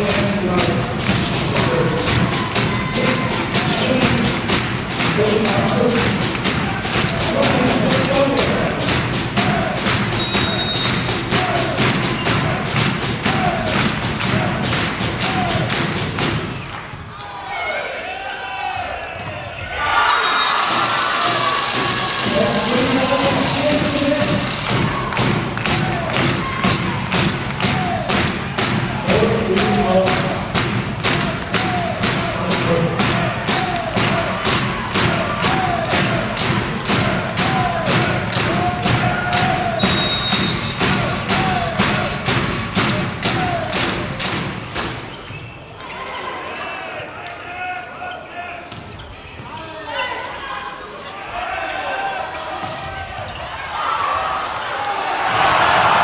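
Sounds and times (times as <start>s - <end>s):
crowd beating a steady rhythm: 0.0s - 17.3s, 19.1s - 45.9s
crowd voices: 0.0s - 56.0s.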